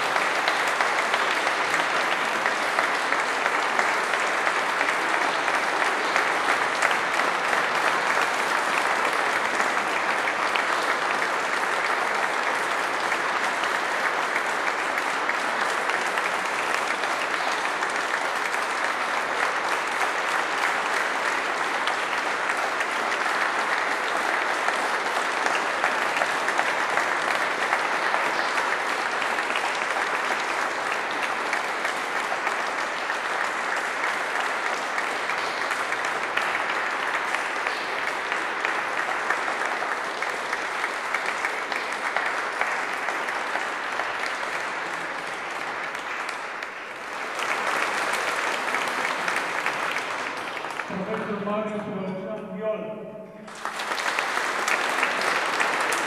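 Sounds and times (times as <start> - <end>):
audience applause: 0.0 - 51.8, 53.4 - 56.0.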